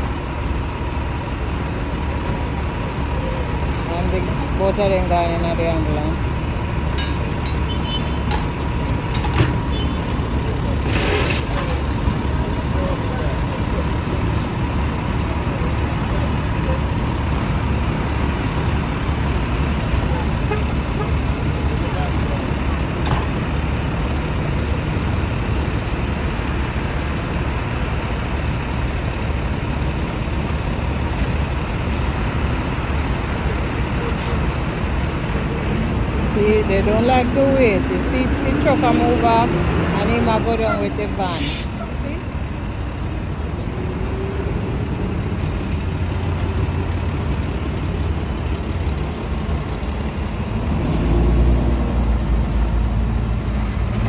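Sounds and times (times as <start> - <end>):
idling vehicle engines: 0.0 - 54.0
passing street traffic: 0.0 - 54.0.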